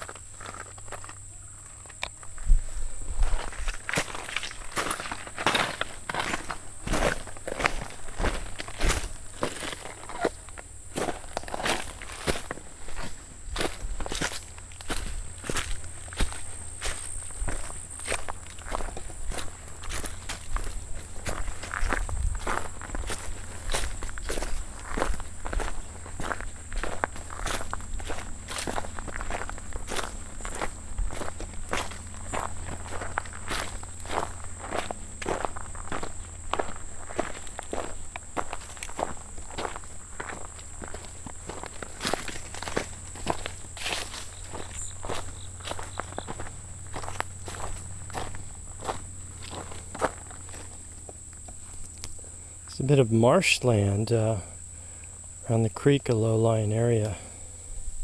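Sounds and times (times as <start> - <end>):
footsteps on dry leaves: 0.0 - 52.4.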